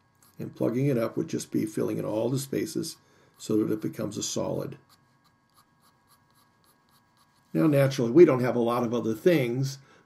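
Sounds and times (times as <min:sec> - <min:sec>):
pencil scratching on paper: 0:04.8 - 0:07.7.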